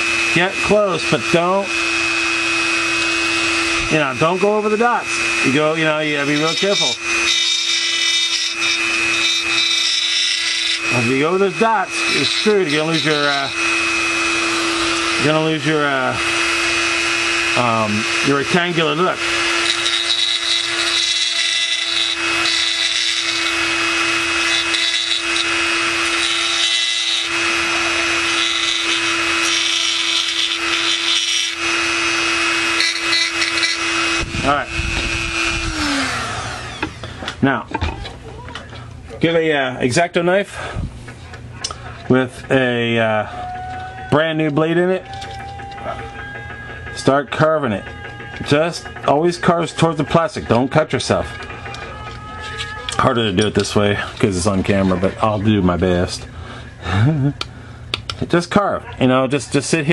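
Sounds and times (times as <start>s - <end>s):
rotary tool grinding plastic: 0.0s - 37.1s, 44.0s - 55.6s
low electrical hum: 0.0s - 59.9s.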